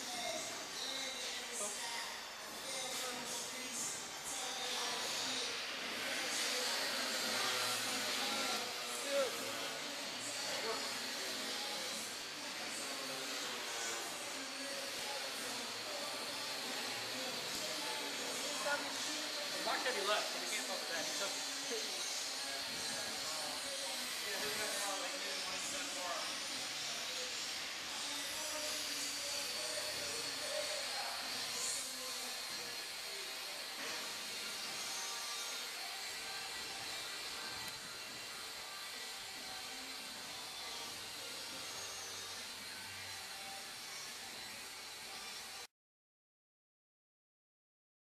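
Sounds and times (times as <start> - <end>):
faint indistinct voices: 0.0 - 45.7.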